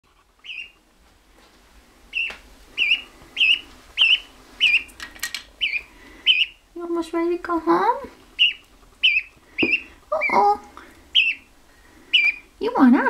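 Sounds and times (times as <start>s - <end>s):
gosling peeping: 0.3s - 0.9s, 2.1s - 13.0s.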